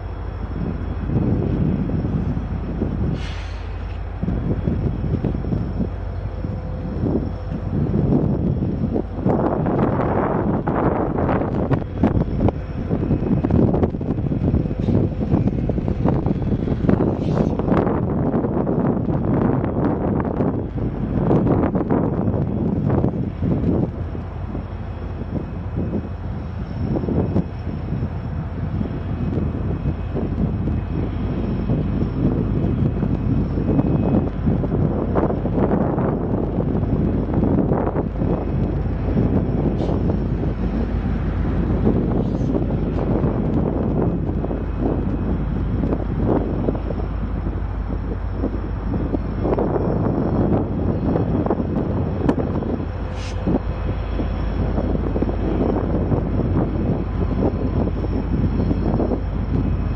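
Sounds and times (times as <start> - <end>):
diesel locomotive engine rumble: 0.0 - 59.9
wind buffeting microphone: 0.0 - 59.9.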